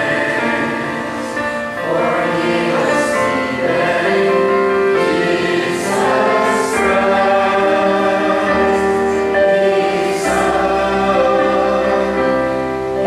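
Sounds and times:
congregation singing a hymn: 0:00.0 - 0:13.0
keyboard accompaniment: 0:00.0 - 0:13.0.

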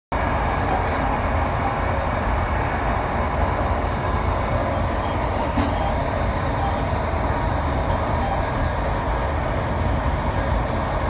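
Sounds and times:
train wheels rumbling on rails: 0:00.1 - 0:11.0.

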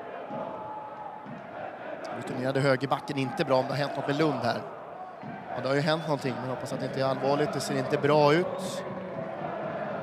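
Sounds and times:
faint crowd chanting: 0:00.0 - 0:10.0.

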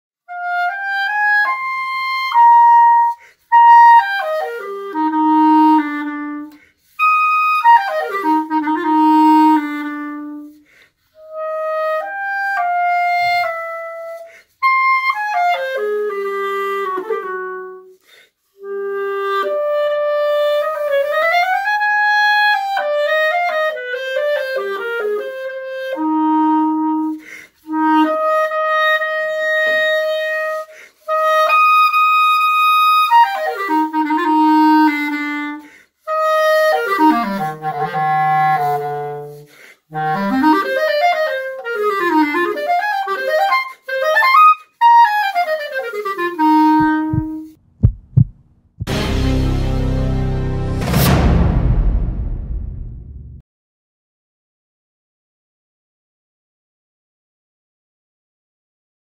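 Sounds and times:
solo clarinet: 0:00.2 - 0:49.1.

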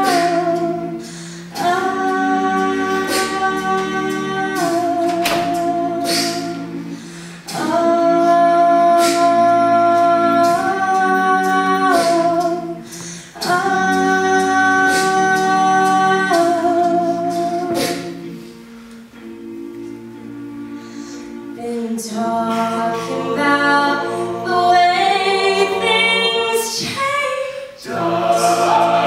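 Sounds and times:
a cappella group singing: 0:00.0 - 0:29.0.

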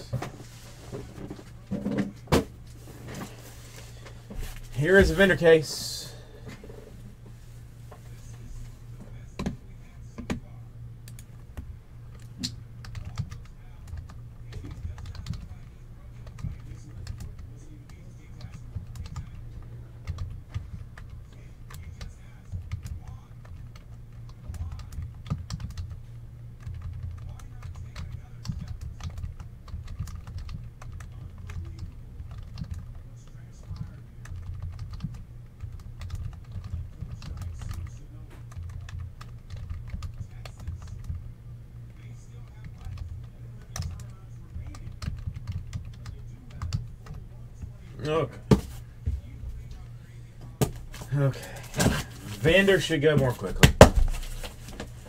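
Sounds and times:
steady low hum: 0:00.0 - 0:55.0
typing on computer keyboard: 0:12.8 - 0:15.6, 0:16.2 - 0:19.4, 0:20.0 - 0:26.0, 0:26.6 - 0:41.2, 0:42.4 - 0:47.2.

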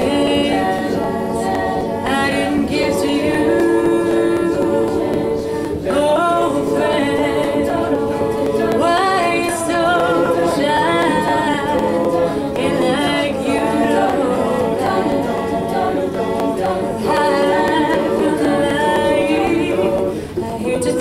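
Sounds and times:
a cappella group singing: 0:00.0 - 0:21.0
woman singing lead: 0:00.0 - 0:21.0.

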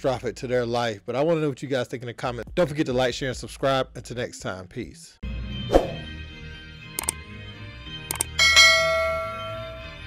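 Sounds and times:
background music: 0:00.0 - 0:10.0
bell chime: 0:08.3 - 0:10.0.

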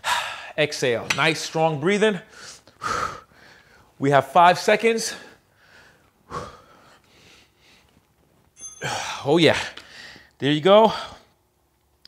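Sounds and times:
man breathing hard: 0:00.0 - 0:00.6, 0:02.3 - 0:04.0, 0:05.1 - 0:07.9, 0:08.8 - 0:11.3.

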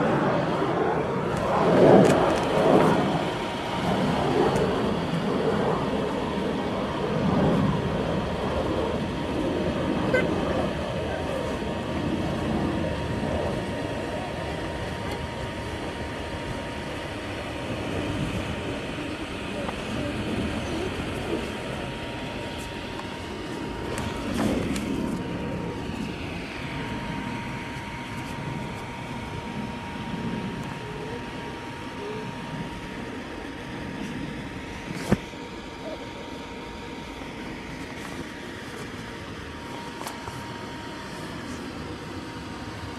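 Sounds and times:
faint steady hum: 0:00.0 - 0:42.9
electric blower rushing: 0:16.8 - 0:30.9.

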